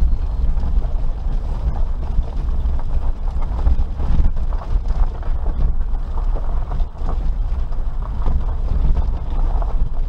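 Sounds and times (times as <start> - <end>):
car engine and tyres rumbling: 0.0 - 10.0
gravel crackling under tyres: 0.0 - 10.0.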